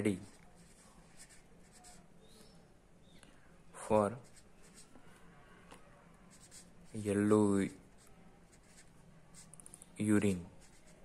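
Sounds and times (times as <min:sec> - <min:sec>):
marker scratching on paper: 0:00.0 - 0:02.6, 0:04.0 - 0:11.0.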